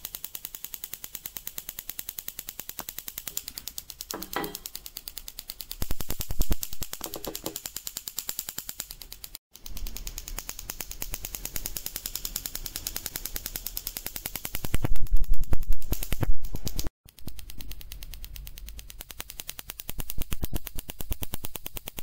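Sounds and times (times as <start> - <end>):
tesla coil sparks crackling: 0.0 - 22.0.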